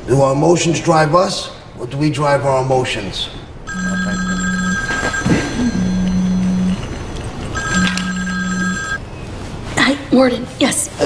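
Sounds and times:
low pulsing buzz: 3.7 - 9.0
phone two-tone ringtone: 3.7 - 9.0.

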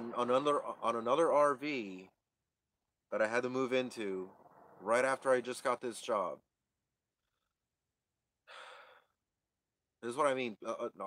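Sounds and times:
man sighing: 8.5 - 9.1.

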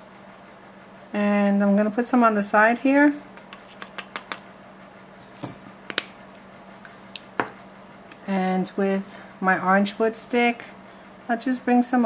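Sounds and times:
low steady hum: 0.0 - 12.0
nail tools clicking on tabletop: 3.5 - 4.5.

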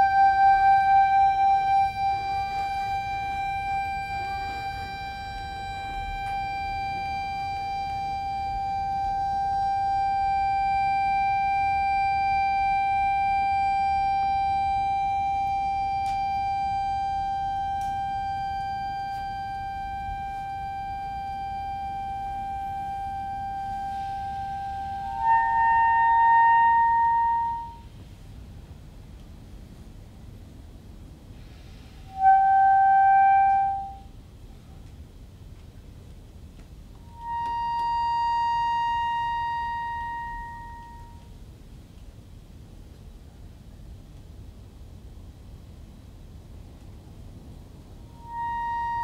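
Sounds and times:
reed instrument holding high note: 0.0 - 27.9, 31.9 - 34.1, 37.0 - 41.3, 48.1 - 49.0.

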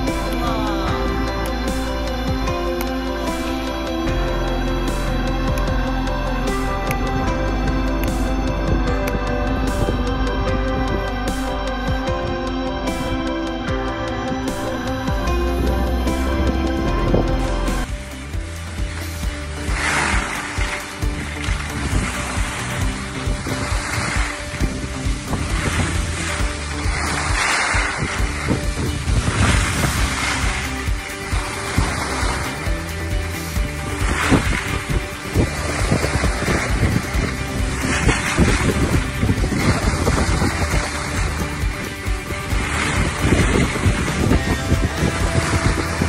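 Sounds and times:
faint background music: 0.0 - 46.0
wind buffeting microphone: 14.2 - 46.0
skis scraping over snow: 17.8 - 46.0.

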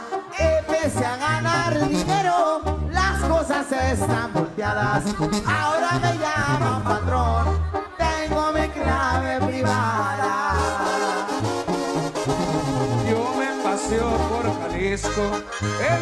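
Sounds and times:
brass band music: 0.0 - 16.0
low bass notes: 0.4 - 16.0.

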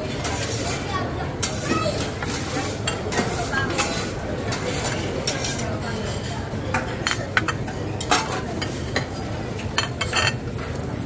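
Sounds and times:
metal utensils clinking: 0.0 - 10.4.

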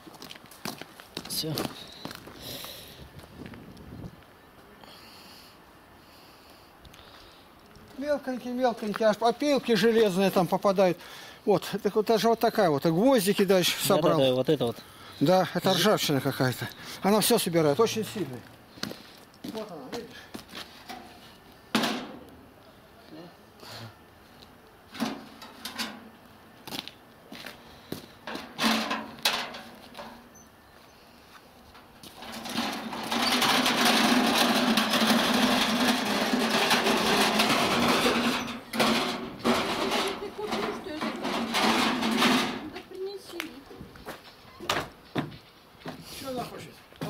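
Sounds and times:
metal tub knocks and scrapes: 21.7 - 22.2, 25.0 - 26.0, 28.3 - 30.2, 32.2 - 42.7
cart rattling over asphalt: 31.9 - 42.9.

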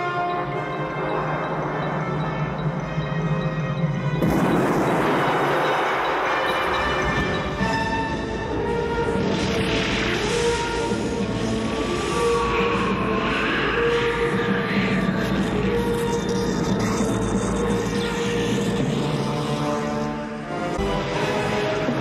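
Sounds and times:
film score with held notes: 0.0 - 22.0.

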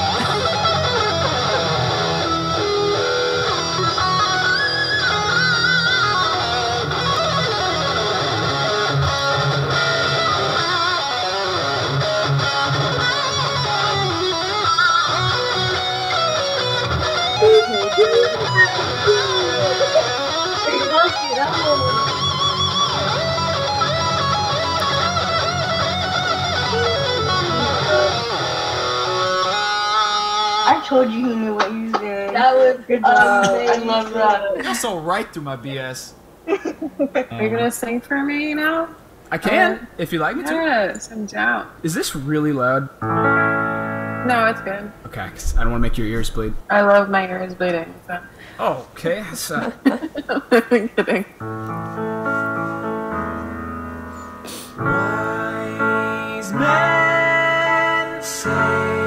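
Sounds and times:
electric guitar rock piece: 0.0 - 31.5, 42.9 - 46.8, 51.4 - 59.0.

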